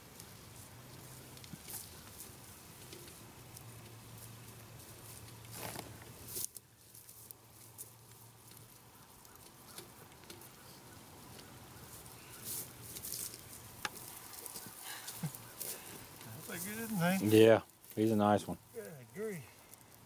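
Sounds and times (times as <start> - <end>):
rustling in dry grass and leaves: 0.0 - 20.0.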